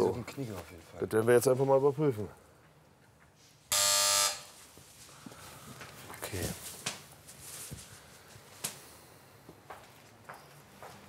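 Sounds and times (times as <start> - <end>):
doorbell buzzer: 3.7 - 4.6.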